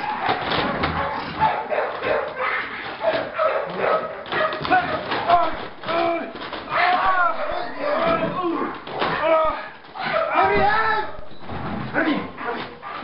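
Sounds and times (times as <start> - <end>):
dog yelping barks: 0.0 - 5.0.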